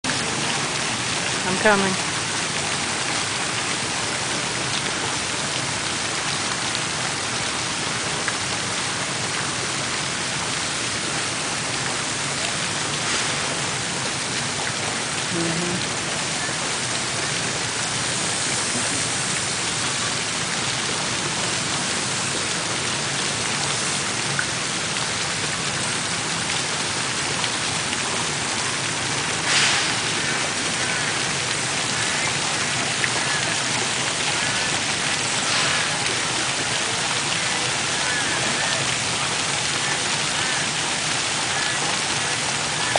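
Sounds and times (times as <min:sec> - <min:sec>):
fountain water splashing: 0:00.0 - 0:42.9.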